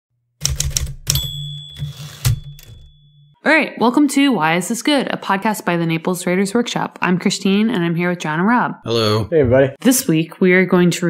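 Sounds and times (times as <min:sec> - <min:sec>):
typewriter key strikes: 0:00.4 - 0:02.9
typewriter bell ringing: 0:00.4 - 0:03.4.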